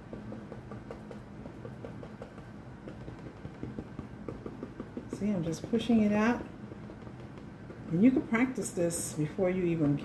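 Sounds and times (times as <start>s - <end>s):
low steady hum: 0.0s - 10.0s
paintbrush tapping on cardboard: 0.0s - 10.0s.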